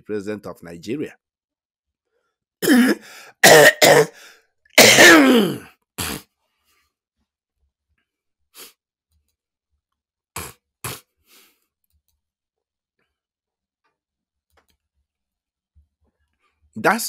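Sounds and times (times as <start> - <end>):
person coughing: 2.6 - 4.2, 4.8 - 6.2.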